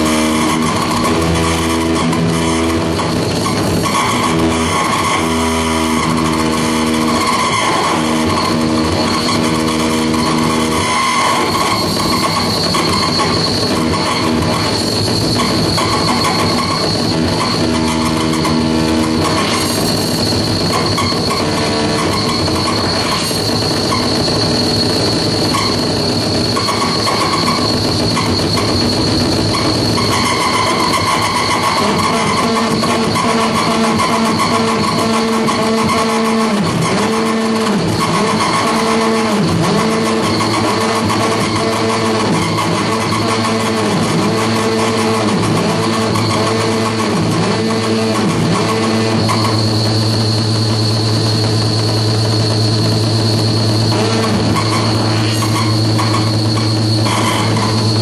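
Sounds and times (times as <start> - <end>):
harsh screeching electronic noise: 0.0 - 58.0
high-pitched electronic whine: 0.0 - 58.0
low warbling tone: 48.5 - 58.0.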